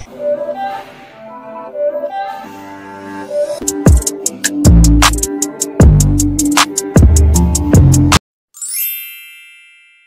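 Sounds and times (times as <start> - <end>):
background music: 0.0 - 8.2
bright high chime: 8.6 - 10.0.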